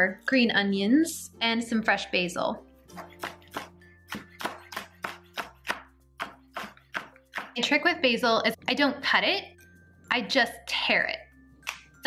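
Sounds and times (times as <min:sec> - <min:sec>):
knife chopping on plastic board: 0:02.9 - 0:07.6.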